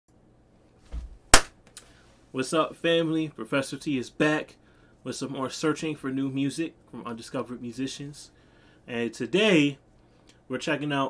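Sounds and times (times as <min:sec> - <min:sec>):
sharp snap: 0:01.3 - 0:01.9.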